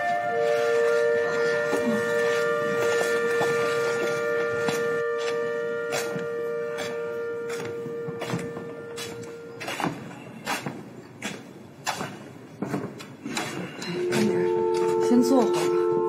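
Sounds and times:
sustained orchestral chord: 0.0s - 9.7s, 13.8s - 16.0s.

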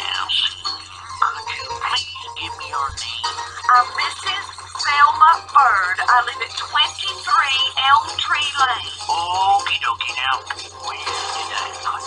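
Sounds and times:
faint background music: 0.0s - 12.0s
high-pitched voices chattering: 0.0s - 12.0s
steady low hum: 0.0s - 12.0s.

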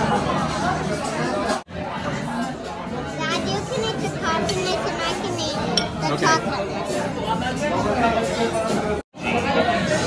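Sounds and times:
restaurant chatter: 0.0s - 10.0s
child talking: 3.2s - 6.5s.

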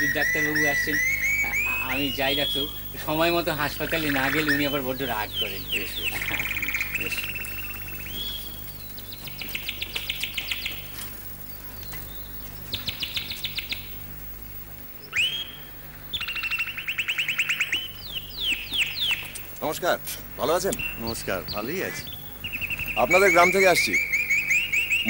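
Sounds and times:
rising whistled bird notes: 0.0s - 10.9s, 15.0s - 19.3s, 20.4s - 25.0s
bird rapid high trills: 0.0s - 14.2s, 15.0s - 19.7s, 20.4s - 25.0s.

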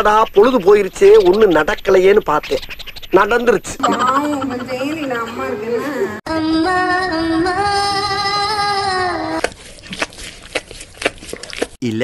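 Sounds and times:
narrator speaking: 3.2s - 6.2s.

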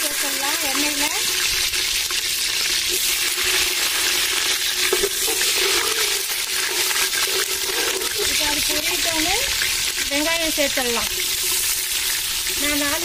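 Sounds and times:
spices sizzling in hot oil: 0.0s - 13.0s
metal ladle stirring pot: 2.6s - 8.9s.

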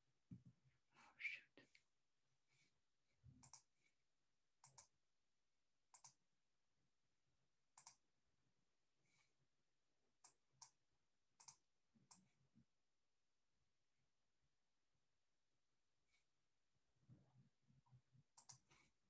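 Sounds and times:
computer mouse clicks: 3.4s - 3.7s, 4.6s - 5.0s, 5.9s - 6.2s, 7.7s - 8.0s, 10.2s - 10.8s, 11.4s - 12.3s, 18.3s - 18.7s.

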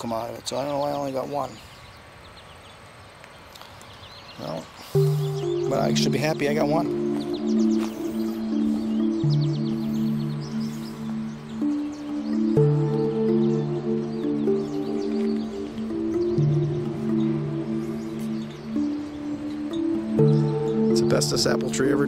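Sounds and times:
calm ambient music: 4.4s - 22.0s.

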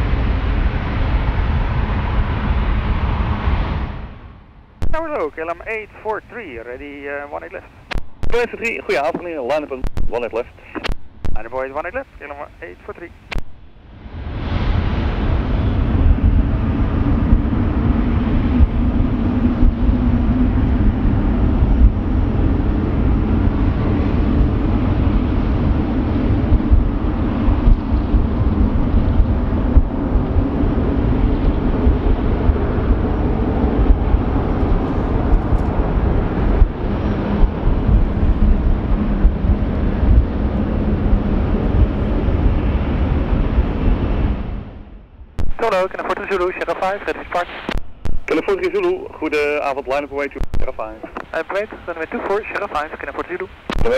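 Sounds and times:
jet engines rumbling: 0.0s - 53.9s.

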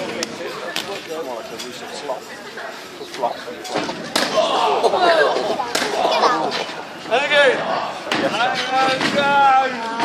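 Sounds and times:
crowd shouting: 4.2s - 10.0s.

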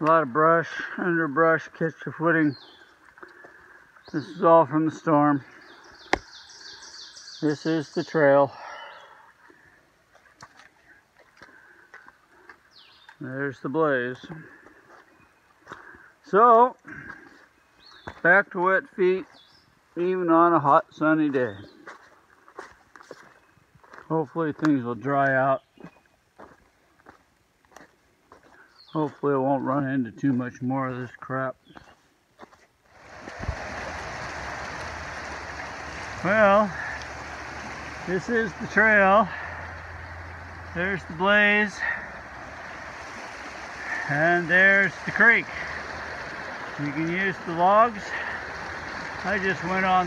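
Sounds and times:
creek rushing: 0.0s - 18.2s, 32.8s - 50.0s
footsteps on muddy trail: 2.0s - 4.4s, 8.5s - 19.9s, 21.2s - 50.0s.

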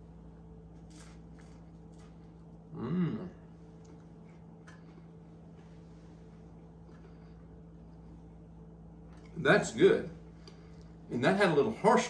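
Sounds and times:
low hum: 0.0s - 12.0s
cracker crunching: 0.6s - 2.7s.

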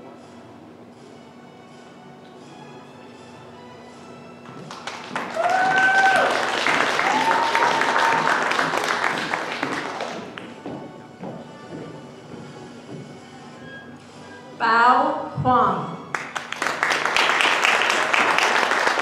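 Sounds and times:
soft background music: 0.0s - 19.0s
audience clapping and cheering: 4.4s - 10.7s, 16.1s - 19.0s
shouted cheers: 5.3s - 8.8s.

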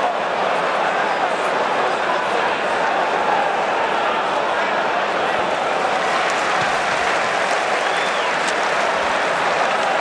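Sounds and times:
stadium crowd noise: 0.0s - 10.0s
crowd clapping: 5.3s - 10.0s.

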